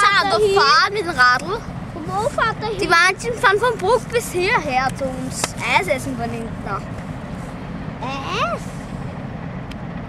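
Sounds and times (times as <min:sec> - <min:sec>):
diesel engines rumbling: 0:00.0 - 0:10.0.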